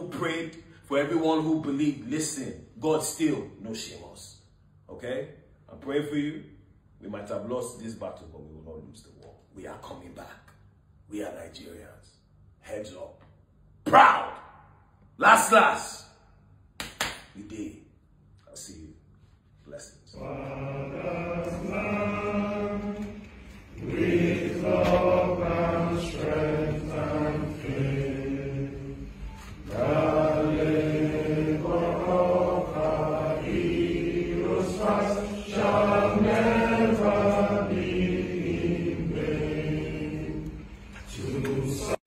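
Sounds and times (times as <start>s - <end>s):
choir singing in unison: 20.1s - 42.0s.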